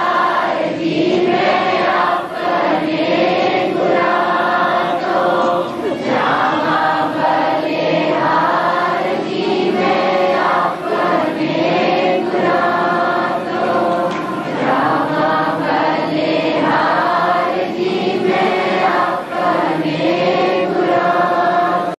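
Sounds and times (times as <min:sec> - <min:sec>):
crowd singing in unison: 0:00.0 - 0:22.0.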